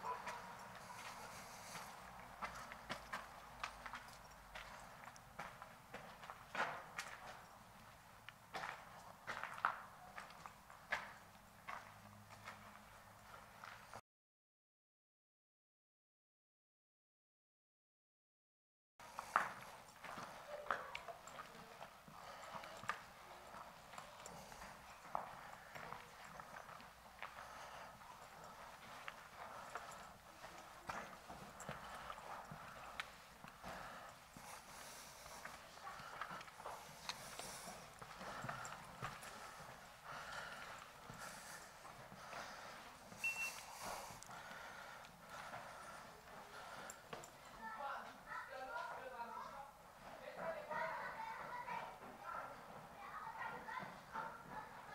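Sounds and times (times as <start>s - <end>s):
footsteps on stone steps: 0.0s - 14.0s, 19.0s - 49.0s, 51.3s - 54.9s.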